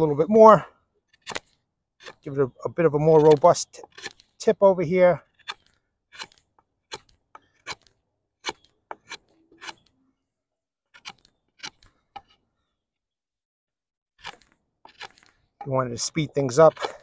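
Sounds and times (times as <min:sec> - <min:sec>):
knife shaving wood: 0:03.0 - 0:04.5, 0:10.9 - 0:12.4, 0:14.2 - 0:17.0.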